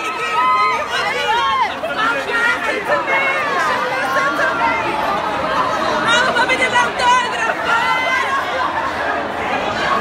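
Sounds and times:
dense crowd chatter: 0:00.0 - 0:10.0
loud voice rising above crowd: 0:00.0 - 0:10.0.

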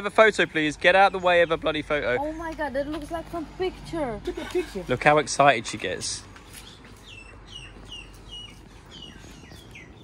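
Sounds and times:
bird chirping: 0:00.9 - 0:02.0, 0:06.4 - 0:10.0.

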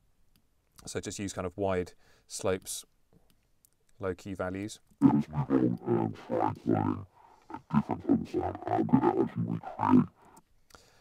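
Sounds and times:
distorted voice-like bass: 0:05.0 - 0:10.4.

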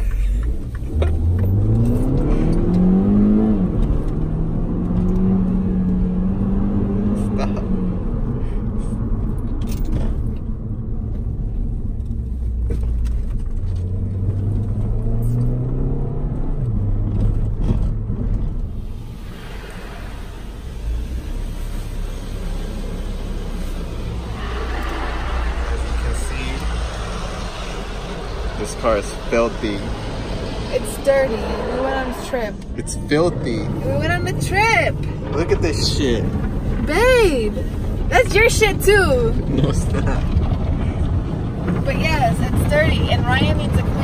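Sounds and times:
car engine accelerating: 0:00.0 - 0:44.0.

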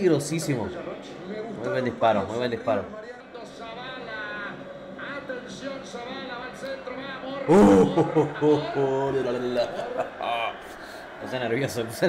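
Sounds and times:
sports commentator talking: 0:00.0 - 0:12.0.

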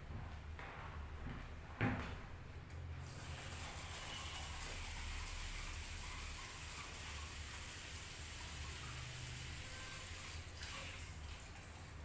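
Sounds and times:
tap water running into sink: 0:03.0 - 0:12.0.

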